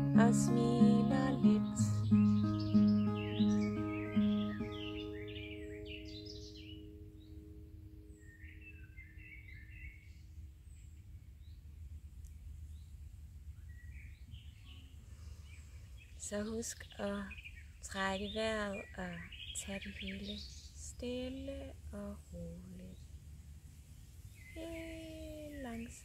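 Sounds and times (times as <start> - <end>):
acoustic guitar playing: 0.0 - 8.7
small birds chirping: 0.0 - 26.0
low background rumble: 9.6 - 19.3, 20.2 - 26.0.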